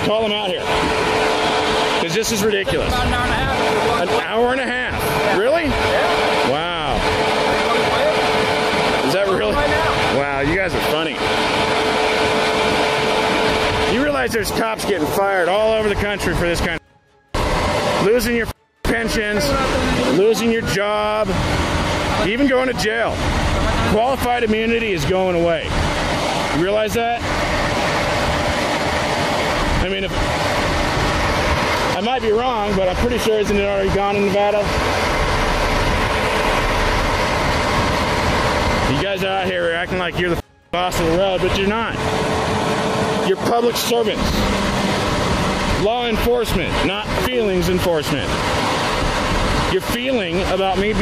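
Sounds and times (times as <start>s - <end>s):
constant whine: 0.0s - 51.0s
even rushing noise: 0.0s - 51.0s
suv engine idling: 0.0s - 51.0s.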